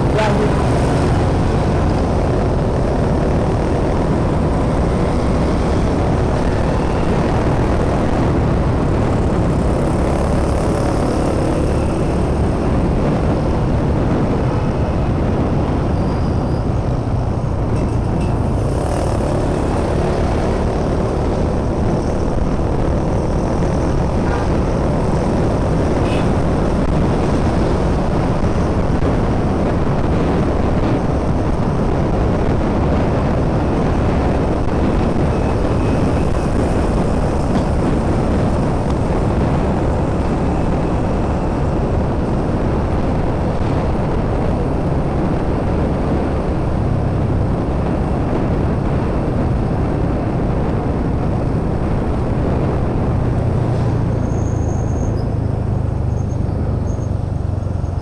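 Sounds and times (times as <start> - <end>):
motorcycle engine rumble: 0.0 - 58.0
road and wind noise: 0.0 - 58.0.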